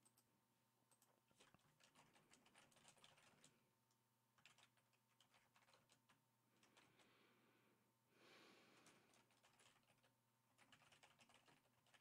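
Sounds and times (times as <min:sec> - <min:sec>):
computer keyboard typing: 0:00.0 - 0:00.3, 0:00.9 - 0:03.6, 0:04.4 - 0:07.0, 0:08.8 - 0:12.0.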